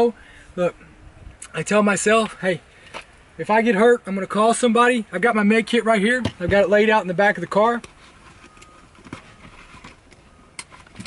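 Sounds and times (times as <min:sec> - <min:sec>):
faint rustling: 0:07.8 - 0:11.0.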